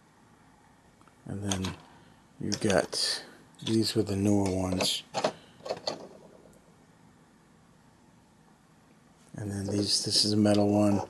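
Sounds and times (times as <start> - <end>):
handling clicks and knocks: 1.4 - 3.0, 3.6 - 6.6, 9.6 - 11.0.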